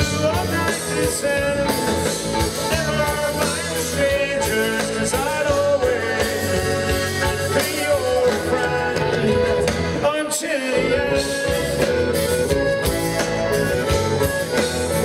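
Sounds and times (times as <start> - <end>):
electric guitar lead: 0.0 - 15.0
live rock band playing: 0.0 - 15.0.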